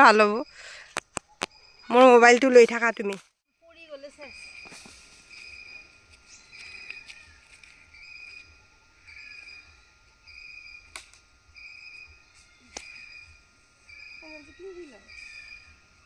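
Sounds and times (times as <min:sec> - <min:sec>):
faint low hum: 0:00.0 - 0:16.0
insect buzzy call: 0:00.0 - 0:16.0
high animal chirping call: 0:11.6 - 0:15.8.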